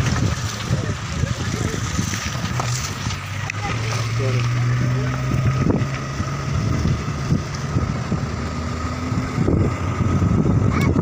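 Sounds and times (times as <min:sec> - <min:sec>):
vehicle engine and road noise: 0:00.0 - 0:11.0
wind buffeting microphone: 0:00.0 - 0:11.0.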